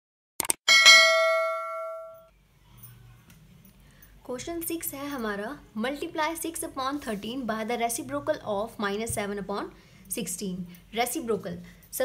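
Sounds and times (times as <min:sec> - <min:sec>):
notification bell ding: 0:00.7 - 0:02.3.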